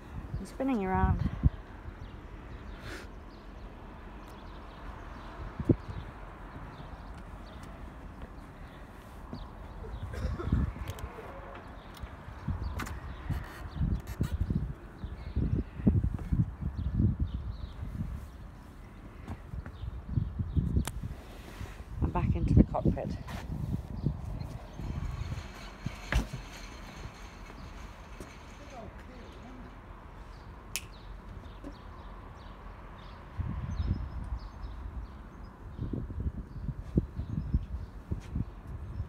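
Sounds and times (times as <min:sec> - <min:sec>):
outdoor background noise: 0:00.0 - 0:39.0
footsteps on fibreglass deck: 0:06.6 - 0:09.8, 0:18.0 - 0:19.9, 0:23.2 - 0:29.4, 0:36.8 - 0:38.8
sharp click: 0:30.7 - 0:31.0.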